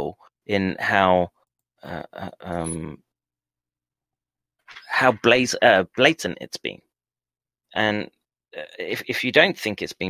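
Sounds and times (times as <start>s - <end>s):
person speaking: 0.0s - 3.0s, 4.7s - 6.8s.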